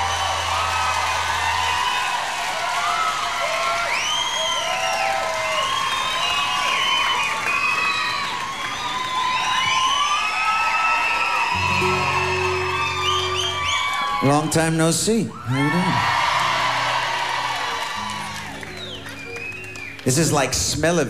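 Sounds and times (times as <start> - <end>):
audience cheering and screaming: 0.0 - 20.1.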